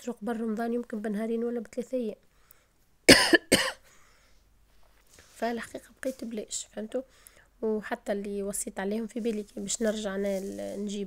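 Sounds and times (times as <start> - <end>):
woman coughing: 3.1 - 3.8.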